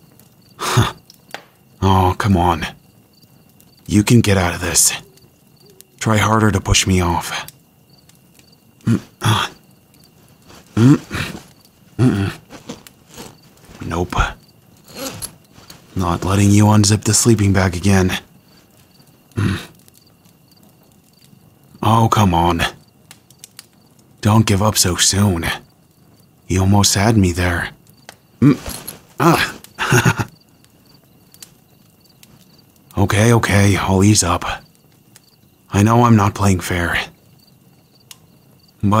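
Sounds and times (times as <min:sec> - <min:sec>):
faint scattered clicks: 0:00.0 - 0:01.8, 0:02.6 - 0:17.5, 0:22.6 - 0:24.3, 0:27.8 - 0:33.8, 0:37.1 - 0:38.8
crickets chirping: 0:00.0 - 0:39.0.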